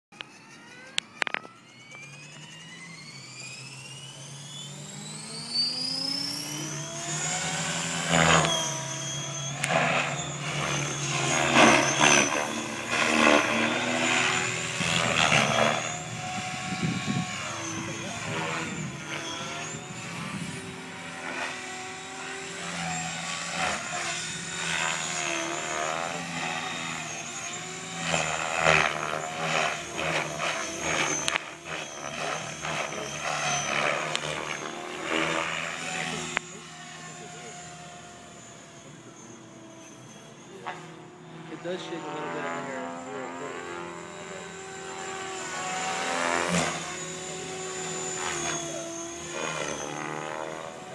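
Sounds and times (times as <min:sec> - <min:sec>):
rc helicopter motor whine: 0:00.1 - 0:50.9
rotor blade noise: 0:00.1 - 0:50.9.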